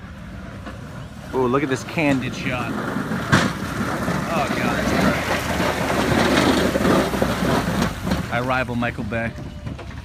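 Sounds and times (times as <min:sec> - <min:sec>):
snowplow blade scraping pavement: 0:00.0 - 0:10.0
truck engine running: 0:00.0 - 0:10.0.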